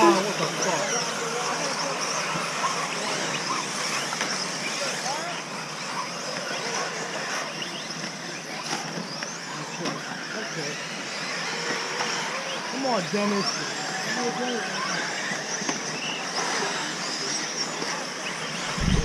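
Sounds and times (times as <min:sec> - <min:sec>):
people talking: 0:00.0 - 0:03.1
rc buggy motors whining: 0:00.0 - 0:19.0.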